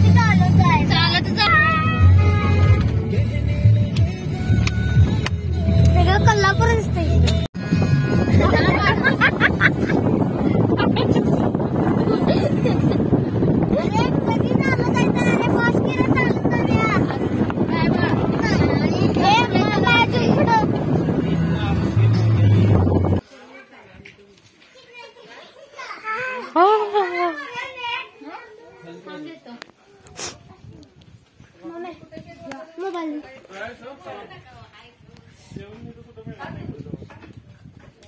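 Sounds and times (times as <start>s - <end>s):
music playing: 0.0s - 15.0s, 16.0s - 23.2s
car engine and road noise: 0.0s - 23.2s
wind on microphone: 7.6s - 23.2s, 34.3s - 38.0s.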